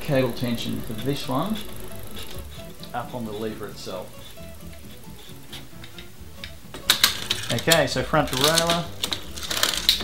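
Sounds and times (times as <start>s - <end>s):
bicycle gear ticks: 0.0s - 3.4s.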